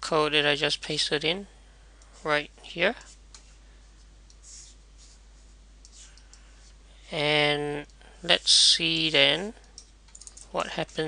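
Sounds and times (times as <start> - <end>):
low room hum: 0.0 - 11.0
computer mouse clicks: 9.6 - 10.4.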